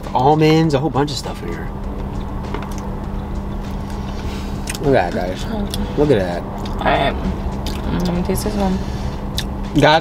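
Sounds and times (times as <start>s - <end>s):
car engine hum from inside cabin: 0.0s - 10.0s.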